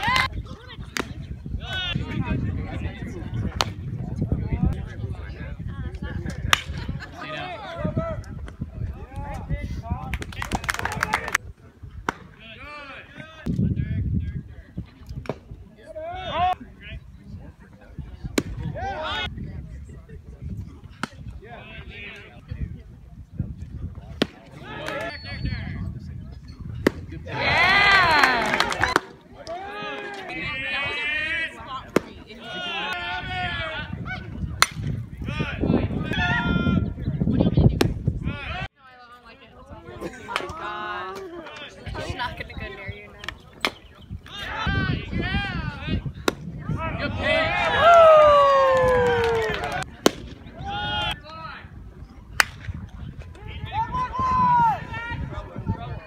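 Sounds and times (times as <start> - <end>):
voices calling out: 24.1 - 38.7, 39.3 - 51.7
baseball bat hitting ball: 26.8 - 27.1, 34.6 - 34.9, 49.6 - 50.4, 52.4 - 52.7
sharp pop: 52.4 - 52.7.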